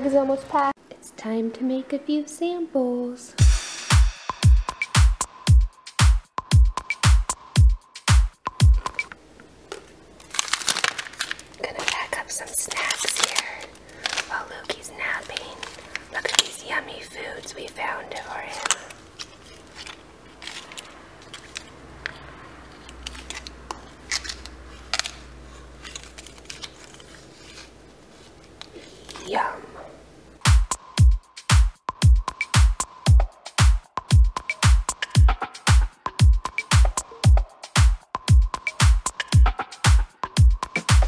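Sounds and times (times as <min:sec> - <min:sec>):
dance beat: 0:03.4 - 0:09.1, 0:30.4 - 0:41.0
plastic pouches crinkling: 0:08.8 - 0:29.3
packets clicking on stone countertop: 0:12.8 - 0:16.6, 0:18.5 - 0:27.1.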